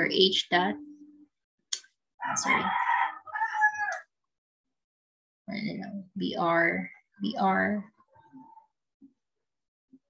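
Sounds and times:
rooster crowing: 0:02.2 - 0:04.1.

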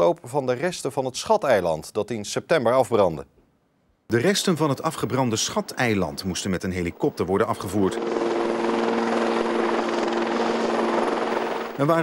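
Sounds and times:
helicopter rotor noise: 0:05.7 - 0:12.0
helicopter engine whine: 0:06.3 - 0:12.0.

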